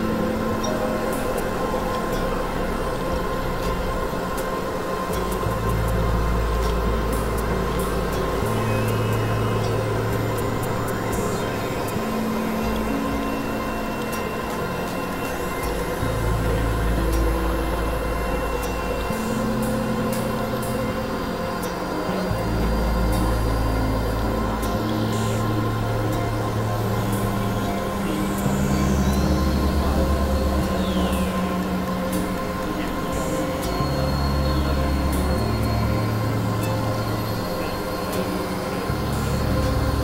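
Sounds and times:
deep bass tone: 0.0 - 40.0
droning synthesizer music: 0.0 - 40.0.

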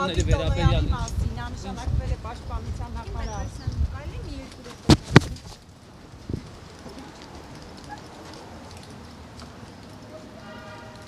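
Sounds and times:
street background noise: 0.0 - 11.0
footsteps on pavement: 2.5 - 10.2.

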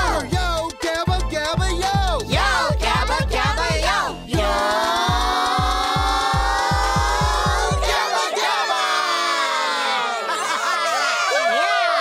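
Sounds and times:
group of voices cheering: 2.4 - 12.0.

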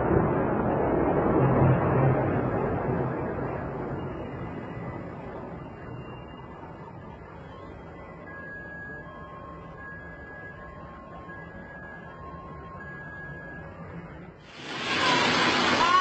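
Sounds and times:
building collapse rush of noise: 0.0 - 7.4, 14.4 - 16.0
steady low rumble: 0.0 - 14.9.

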